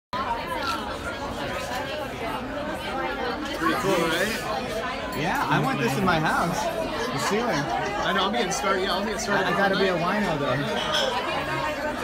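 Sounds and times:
crowd babble: 0.1 - 12.0.

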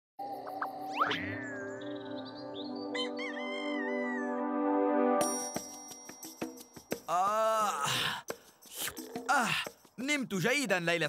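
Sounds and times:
rooster crowing: 3.0 - 4.4.

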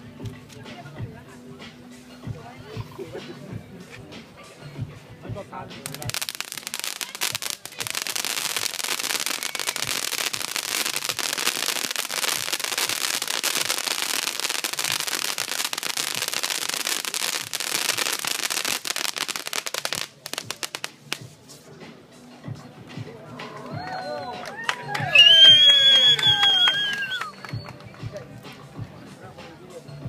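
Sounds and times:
pyrotechnic sparks crackling: 5.8 - 21.3.

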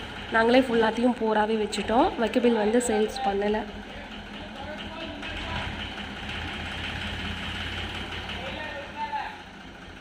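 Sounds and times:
tractor diesel engine idling: 0.0 - 10.0.

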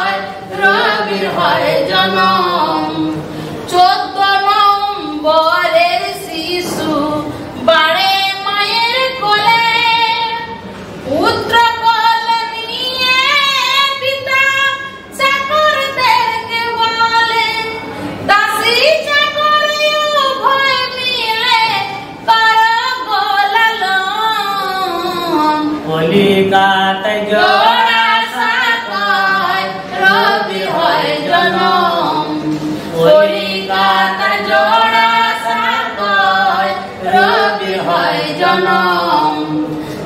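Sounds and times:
woman singing unaccompanied: 0.0 - 25.9, 27.0 - 39.6.

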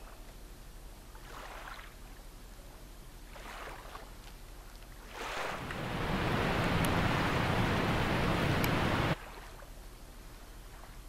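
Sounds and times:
faint low hum: 0.0 - 11.0
rushing water: 5.1 - 9.4.

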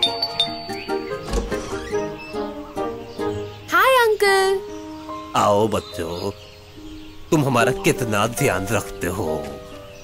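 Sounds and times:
cartoon doorbell ringing: 0.0 - 1.1
background music: 0.0 - 10.0.

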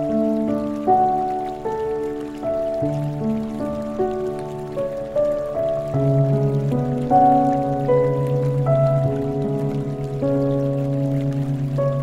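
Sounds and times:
rain patter: 0.0 - 12.0
slow piano music: 0.0 - 12.0.

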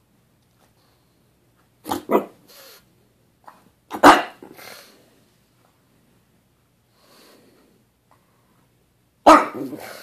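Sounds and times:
dog barking: 1.9 - 2.4, 3.9 - 4.6, 9.2 - 10.0
dog breathy huff: 4.4 - 5.0.

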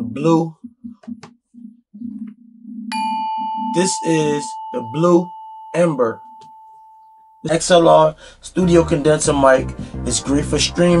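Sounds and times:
bell-like chime ding: 2.9 - 7.5
low background music: 8.4 - 11.0.

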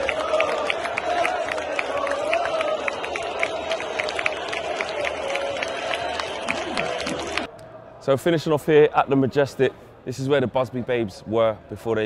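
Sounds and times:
crowd singing a chant: 0.0 - 3.1
hand claps: 0.0 - 7.5.

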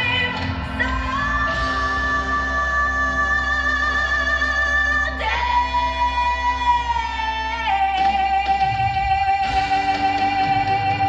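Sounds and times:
person singing a song: 0.0 - 11.0.

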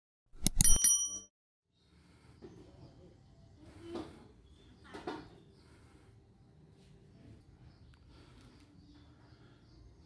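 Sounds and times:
quick clicks: 0.4 - 0.9
short bright bell ding: 0.4 - 1.3
faint background ambience: 1.8 - 10.0.

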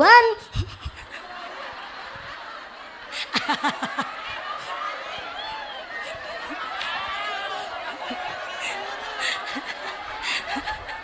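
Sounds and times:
woman laughing: 0.3 - 1.5
audience laughing murmur: 0.4 - 11.0.

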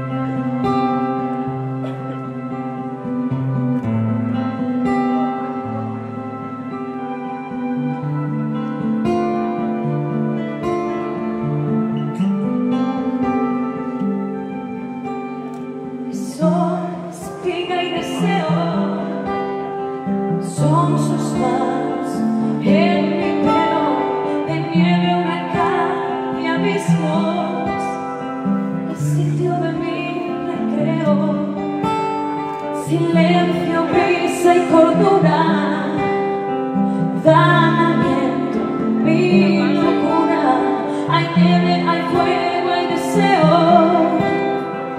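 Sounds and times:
acoustic guitar ballad: 0.0 - 44.9
woman singing: 16.1 - 44.9.

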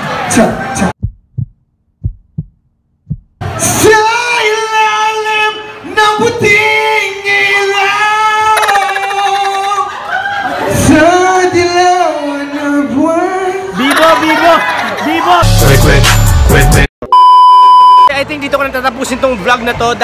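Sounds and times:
low thumps: 1.0 - 3.4.

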